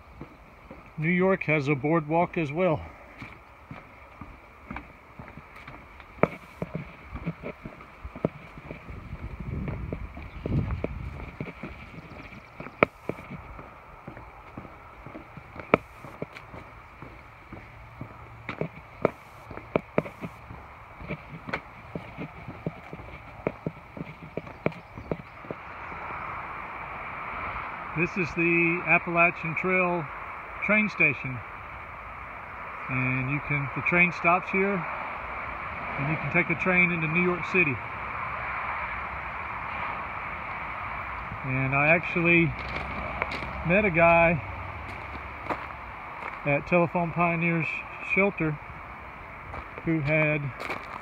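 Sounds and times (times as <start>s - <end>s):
footsteps on wooden boardwalk: 0.0s - 1.5s, 2.8s - 26.1s, 42.5s - 46.5s, 49.5s - 51.0s
wind rumbling on microphone: 2.7s - 51.0s.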